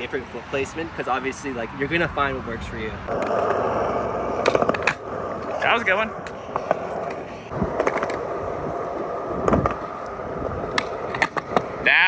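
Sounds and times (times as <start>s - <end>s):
skateboard wheels rolling on concrete: 0.0s - 12.0s
skateboard tail cracking: 3.1s - 11.9s.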